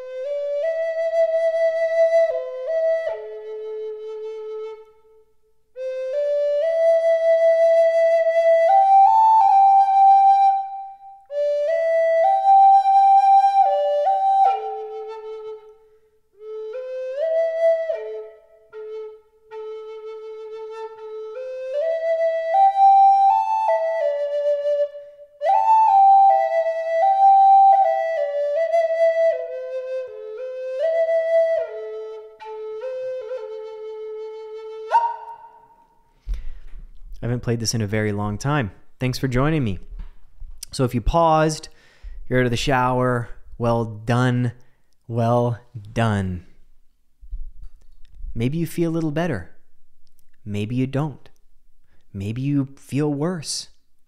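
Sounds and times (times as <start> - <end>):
wooden flute melody: 0.0 - 36.9.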